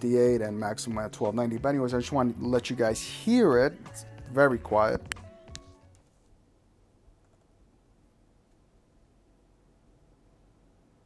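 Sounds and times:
background music: 0.0 - 6.1.

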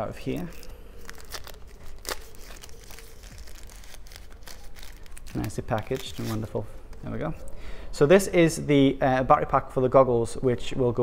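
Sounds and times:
plastic wrapping crinkling: 0.0 - 7.1.

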